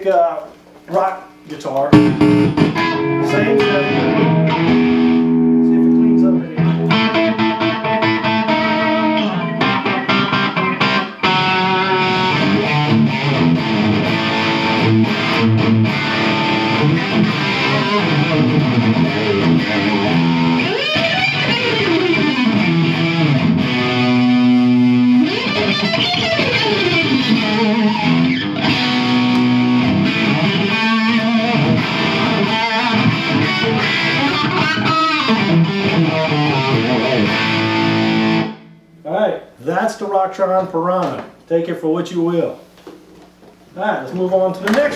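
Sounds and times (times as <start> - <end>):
distorted electric guitar riffs: 1.3 - 39.0.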